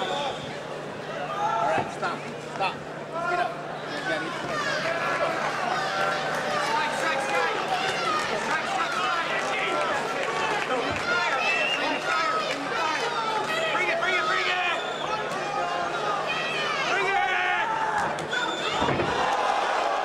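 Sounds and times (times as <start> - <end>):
crowd shouting and yelling: 0.0 - 2.4, 3.0 - 20.0.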